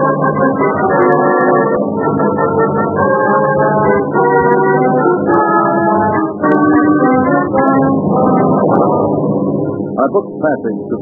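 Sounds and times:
aircraft engine drone: 0.0 - 11.0.

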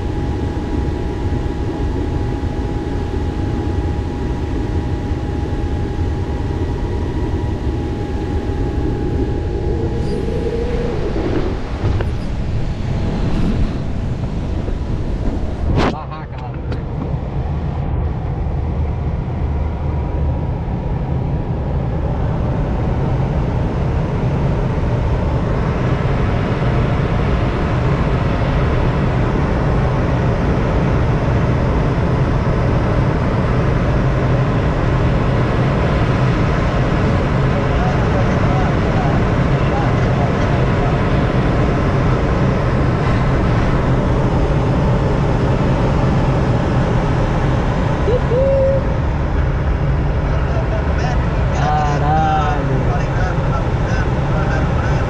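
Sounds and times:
low steady hum: 0.0 - 55.0
rush of air in flight: 0.0 - 55.0.

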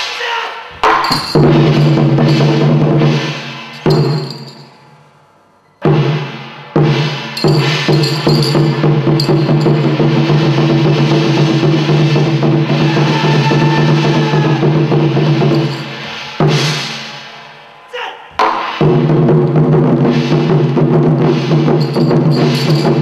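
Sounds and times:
loud drum strikes: 0.8 - 4.7, 5.8 - 17.4, 18.4 - 23.0.

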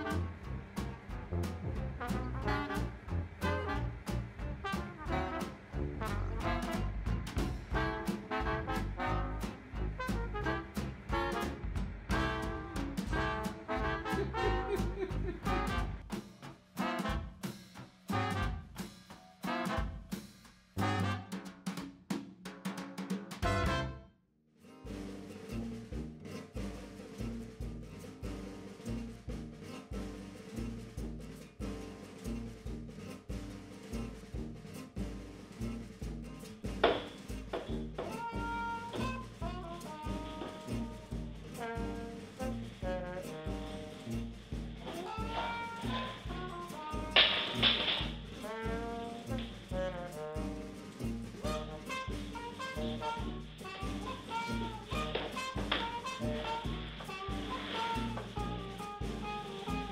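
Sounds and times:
bass beat: 0.0 - 16.2, 24.9 - 59.9
brass melody: 0.0 - 21.7, 23.4 - 24.2, 24.9 - 59.9
upbeat jazz music: 0.0 - 24.0, 24.8 - 59.9.

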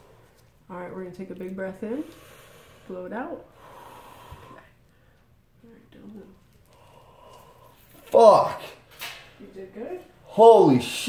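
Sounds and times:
man breathing out slowly: 3.6 - 5.1.

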